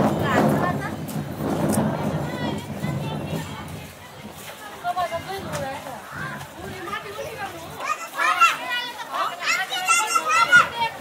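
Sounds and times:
children calling out and chattering: 0.0 - 11.0.

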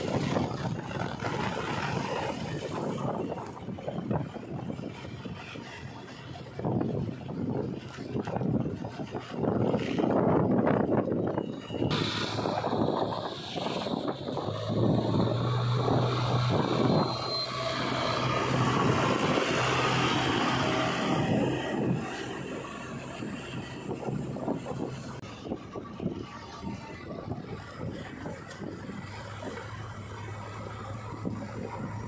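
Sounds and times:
diesel engine running: 0.0 - 32.0
wind noise: 0.0 - 32.0.

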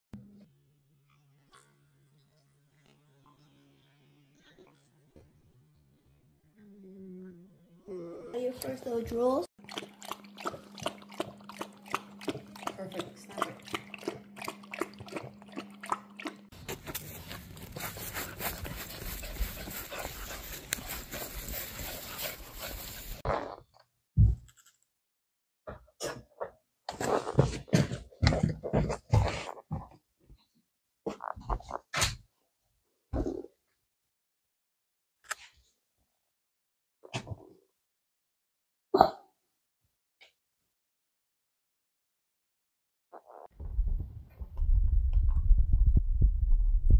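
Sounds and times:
puppy lapping water: 9.6 - 23.3
soft ticks in grass: 16.9 - 23.2
wind on microphone: 43.6 - 46.9.

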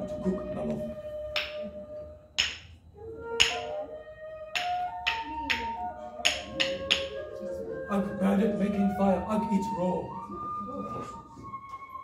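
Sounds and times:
flute-like background music: 0.0 - 12.0.

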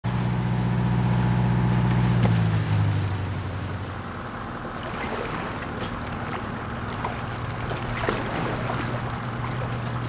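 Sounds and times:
boat engine running: 0.1 - 10.0.

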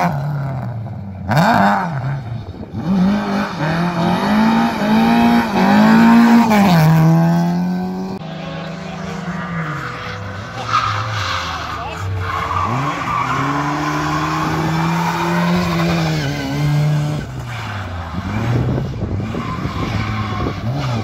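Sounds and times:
rally car engine revving: 0.0 - 21.0.

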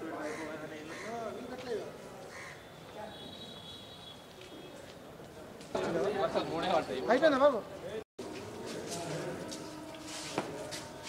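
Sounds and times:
people's voices outdoors: 0.0 - 11.0
crows cawing: 0.2 - 1.3, 2.3 - 2.7.

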